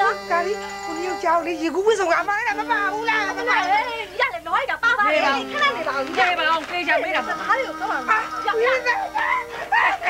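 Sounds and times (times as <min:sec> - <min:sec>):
women talking animatedly: 0:00.0 - 0:10.0.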